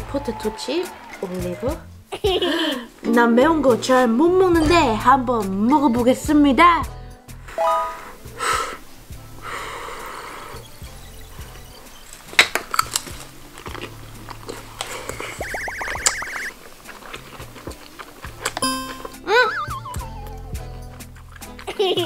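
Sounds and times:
crunching and chewing: 12.0s - 19.2s, 20.2s - 22.0s
background music with beat: 15.4s - 16.5s, 18.6s - 21.1s
cartoonish wobbling sound effect: 15.4s - 16.5s, 18.6s - 20.4s.

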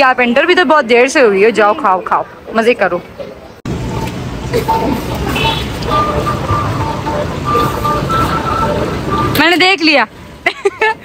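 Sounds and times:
faint tune of high notes: 3.9s - 9.6s.

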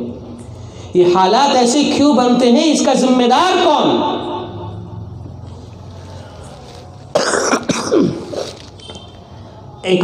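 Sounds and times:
man coughing: 7.1s - 8.5s.

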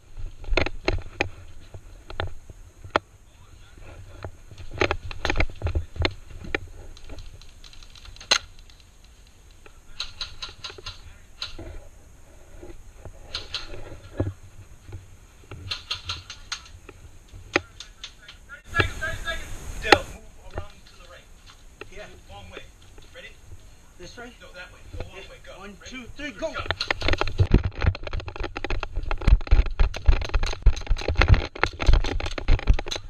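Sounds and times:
dense rustling noise: 0.0s - 17.6s, 18.6s - 33.0s
sharp clicks and knocks: 4.2s - 11.8s, 12.7s - 18.9s, 26.6s - 33.0s.

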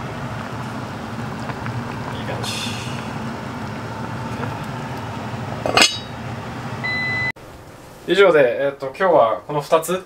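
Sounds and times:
background hiss: 7.4s - 10.0s.

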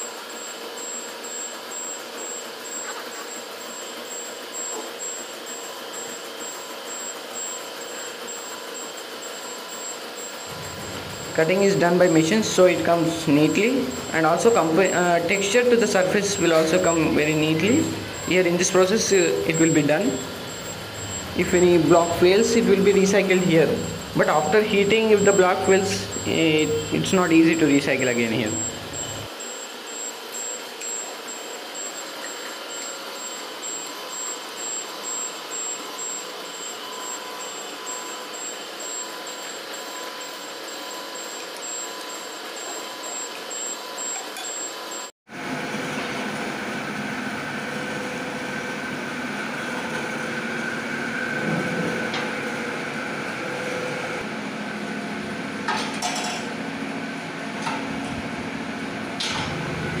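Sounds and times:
factory machinery hum: 0.0s - 60.0s
high machine whine: 0.0s - 60.0s.

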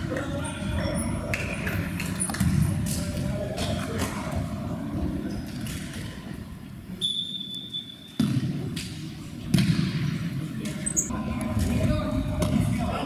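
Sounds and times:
rumbling sports hall background: 0.0s - 13.0s.

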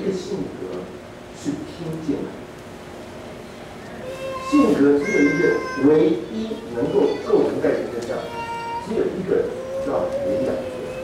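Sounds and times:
man lecturing: 4.4s - 11.0s.

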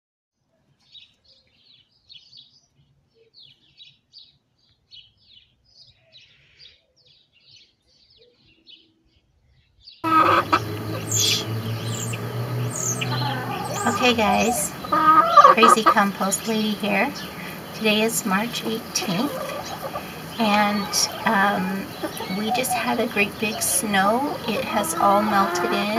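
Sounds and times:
small birds chirping: 0.8s - 25.9s
chickens clucking: 10.0s - 25.9s
steady low hum: 10.0s - 25.9s.

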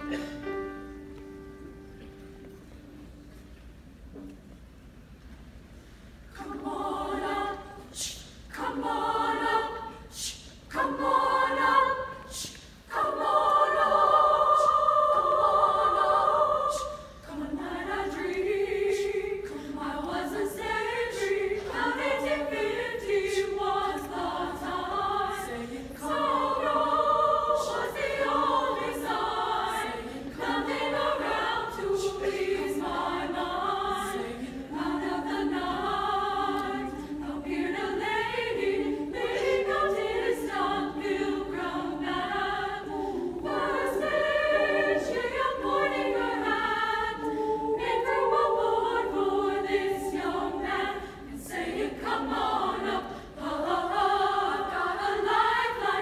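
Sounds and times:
women's choir singing: 6.3s - 56.0s.

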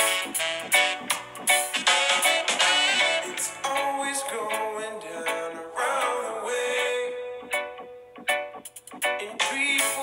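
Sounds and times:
pop song with plucked guitar: 1.5s - 10.0s.

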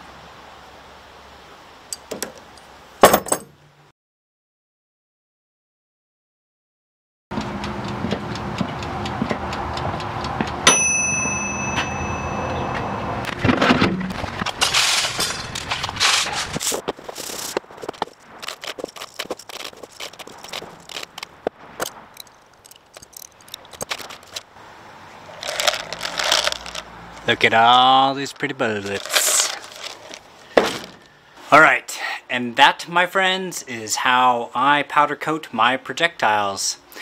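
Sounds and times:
timer bell ding: 10.6s - 13.2s
lead bullets clicking together: 18.2s - 24.4s.

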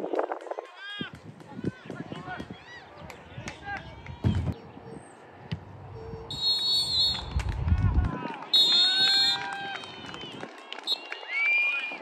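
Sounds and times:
referee's whistle blasts: 6.3s - 7.4s, 8.5s - 10.0s.

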